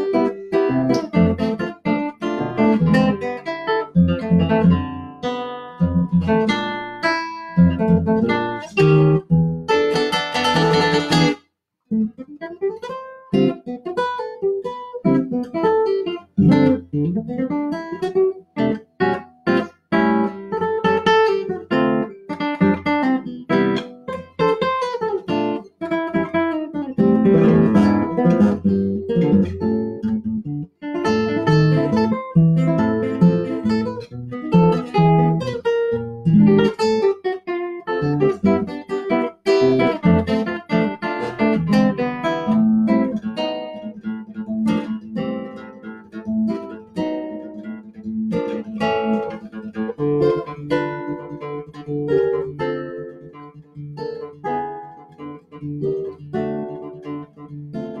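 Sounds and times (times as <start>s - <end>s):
classical guitar fingerstyle: 0.0s - 58.0s.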